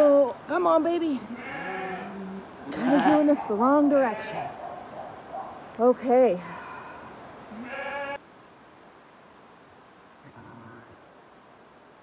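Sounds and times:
sheep bleating: 1.3s - 4.5s, 7.5s - 8.2s.

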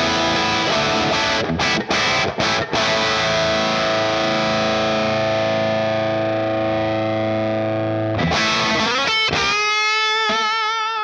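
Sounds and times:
electric guitar chord ringing: 0.0s - 11.0s
electric guitar strums: 0.0s - 11.0s.

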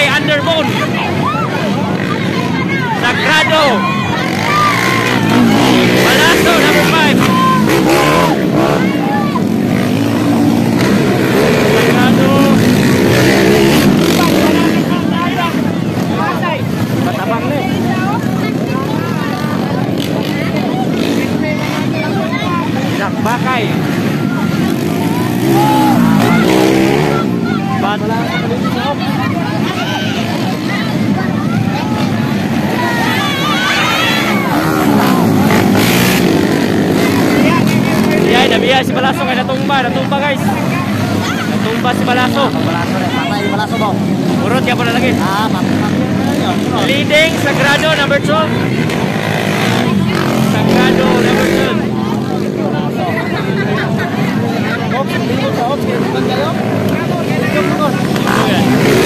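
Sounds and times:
motorcycle engines revving: 0.0s - 59.0s.

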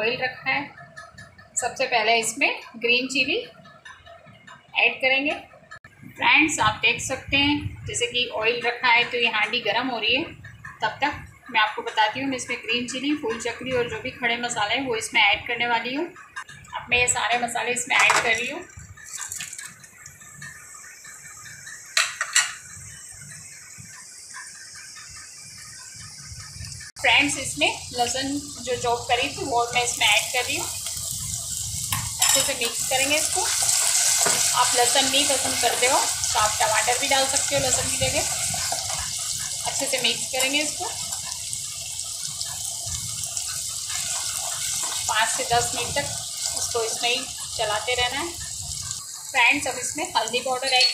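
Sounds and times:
chillies sizzling in hot oil: 6.2s - 50.9s.

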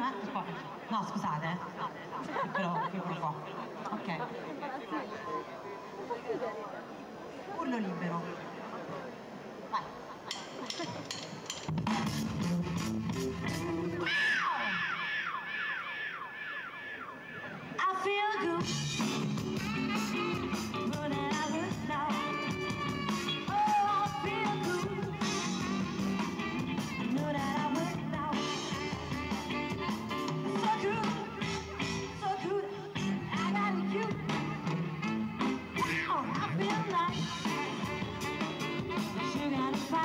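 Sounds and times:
live rock band playing: 10.4s - 14.3s, 18.6s - 40.0s
person singing: 13.1s - 15.1s, 17.8s - 34.8s, 35.8s - 40.0s.

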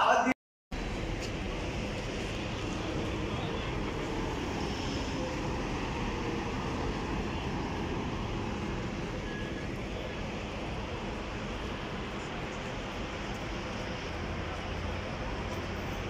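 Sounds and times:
distant crowd voices: 0.8s - 16.0s
vehicles rumbling: 0.8s - 16.0s.

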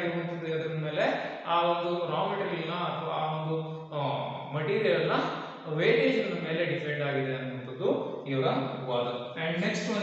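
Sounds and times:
man speaking in drawn-out tone: 0.0s - 10.0s.

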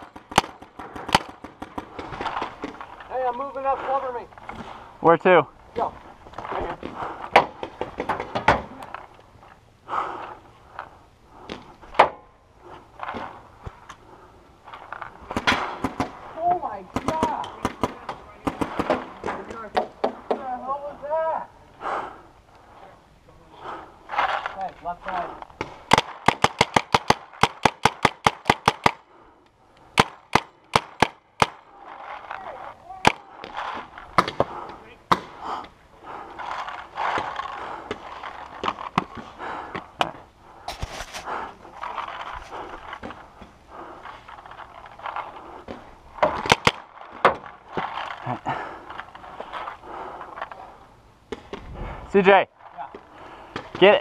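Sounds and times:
paintball markers firing: 0.0s - 2.8s, 25.6s - 29.0s, 29.8s - 31.6s, 46.2s - 47.9s.

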